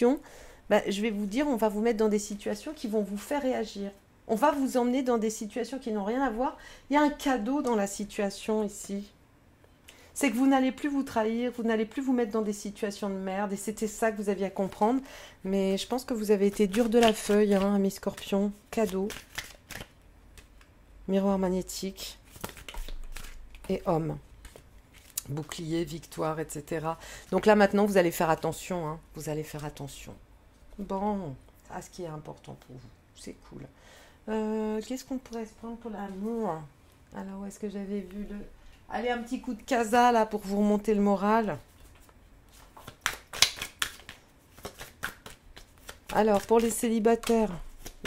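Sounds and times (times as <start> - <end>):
cards flicking and rustling: 16.5 - 20.7, 22.3 - 23.8, 24.4 - 25.2, 41.8 - 48.0.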